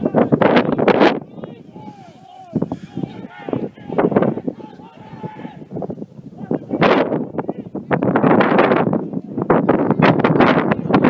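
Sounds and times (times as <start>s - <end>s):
wind buffeting microphone: 0.0s - 11.0s
faint distant shouting: 1.2s - 5.7s.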